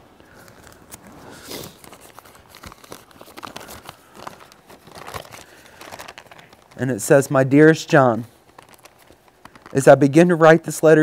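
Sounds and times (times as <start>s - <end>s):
paper rustling and crinkling: 0.2s - 10.6s.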